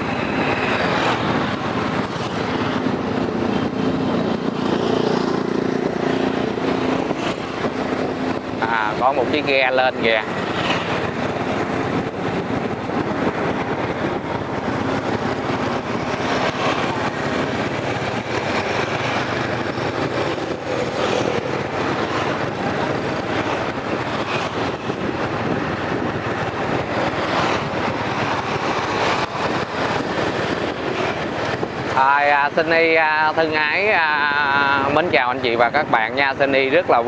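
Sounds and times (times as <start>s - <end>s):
road noise: 0.0s - 37.0s
wind rushing: 0.0s - 37.0s
motorbike engine running: 0.2s - 32.7s.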